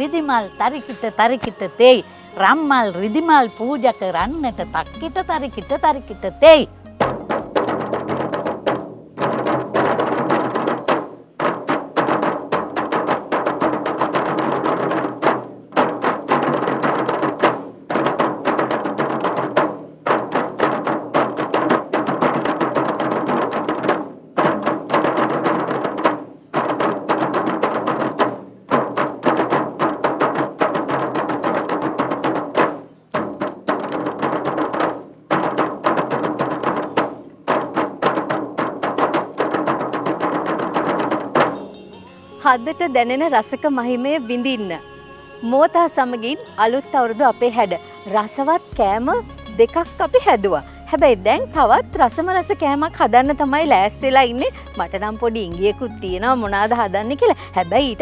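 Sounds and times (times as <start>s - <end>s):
large frame drum beaten by hand: 4.2s - 41.8s, 48.7s - 52.3s, 53.1s - 57.0s.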